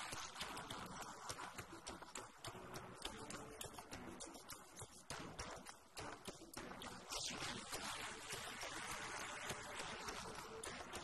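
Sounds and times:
steady hiss: 0.0 - 2.5, 6.6 - 11.0.

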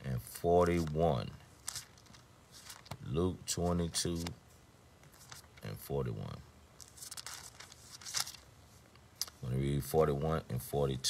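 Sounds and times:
paper pages rustling: 0.6 - 4.4, 5.0 - 5.7, 6.8 - 9.4.

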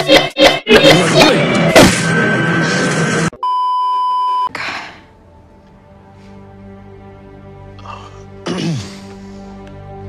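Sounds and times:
loud clip audio: 0.0 - 3.4
electronic censor bleep: 3.4 - 4.5.

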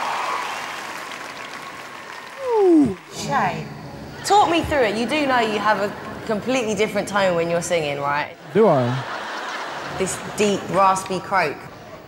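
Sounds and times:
large audience applauding: 0.0 - 3.2.

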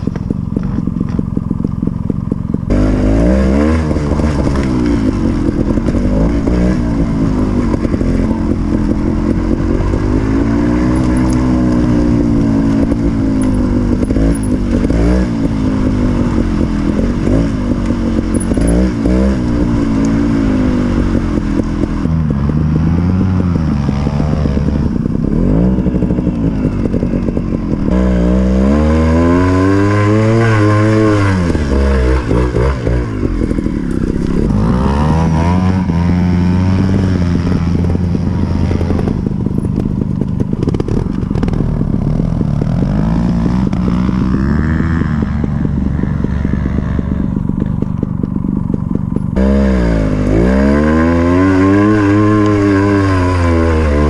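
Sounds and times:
two-stroke motorcycle engine revving: 0.0 - 54.0.

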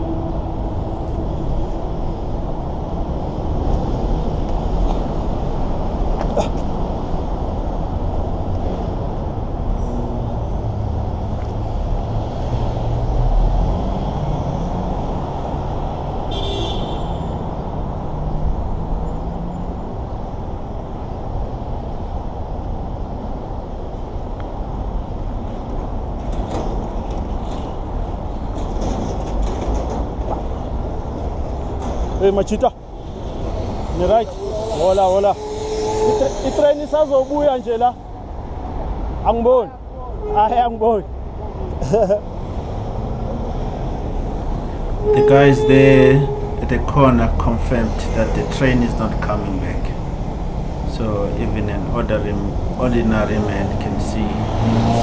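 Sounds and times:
city road traffic rumble: 0.0 - 55.0
vehicle engine passing: 34.3 - 37.2, 44.2 - 55.0
brief high-pitched sound: 44.5 - 50.0.

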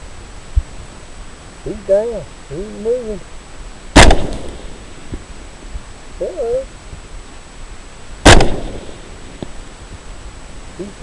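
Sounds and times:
suppressed rifle shot: 3.9 - 4.8, 8.2 - 9.6.

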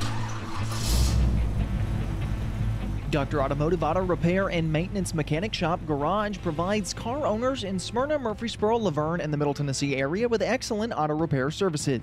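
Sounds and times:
car engine rumble: 0.0 - 9.4
skid-like hiss: 0.5 - 1.3.

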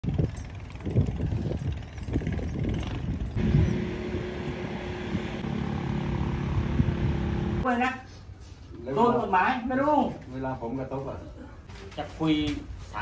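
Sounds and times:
engine running: 0.0 - 7.6.

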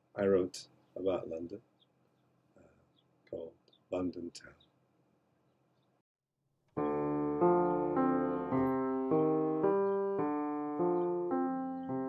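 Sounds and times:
sustained keyboard chord: 6.8 - 12.0.

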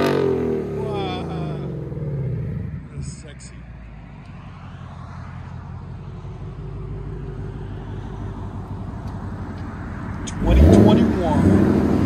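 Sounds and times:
car engine idling: 0.2 - 12.0.

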